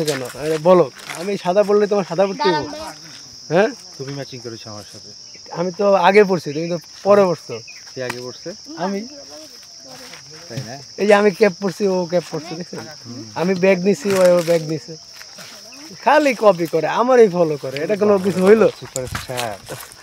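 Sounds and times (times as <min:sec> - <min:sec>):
high-pitched insect drone: 0:00.0 - 0:20.0
men talking loudly: 0:00.0 - 0:20.0.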